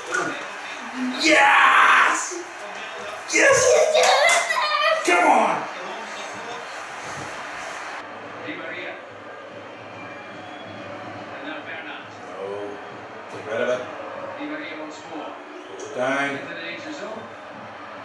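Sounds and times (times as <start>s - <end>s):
man and boy shouting and cheering: 0.0s - 2.6s, 3.2s - 5.8s
hand claps: 3.5s - 4.7s.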